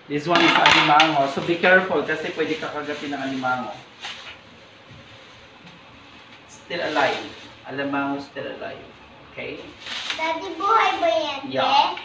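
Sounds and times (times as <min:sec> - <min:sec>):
room noise: 0:00.0 - 0:12.0
plastic bag rustling: 0:00.4 - 0:08.3, 0:09.6 - 0:11.9.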